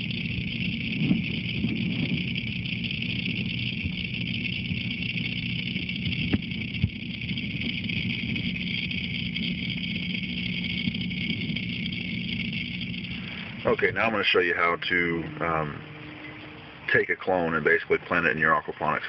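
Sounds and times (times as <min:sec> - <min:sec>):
underwater machine hum: 0:00.0 - 0:19.0.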